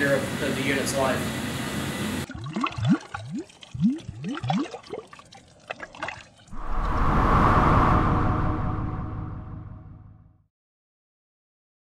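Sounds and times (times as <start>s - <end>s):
whoosh: 6.5s - 10.4s.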